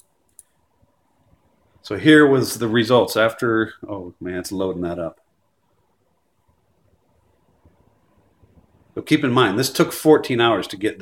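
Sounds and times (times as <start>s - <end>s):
computer mouse clicks: 0.0s - 0.6s
man speaking: 1.8s - 5.2s, 9.0s - 11.0s.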